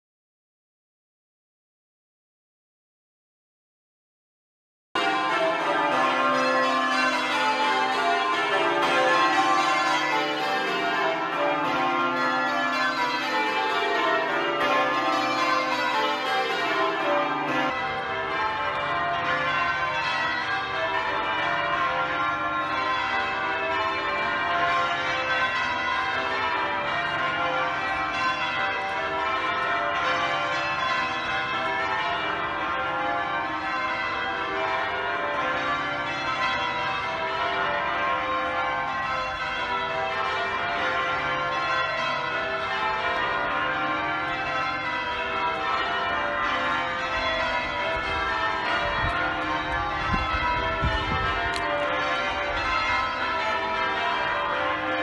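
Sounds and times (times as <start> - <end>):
church bells change ringing: 5.0 - 55.0.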